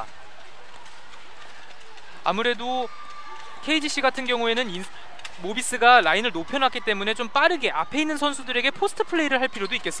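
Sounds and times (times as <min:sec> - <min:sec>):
gymnasium hall murmur: 0:00.0 - 0:10.0.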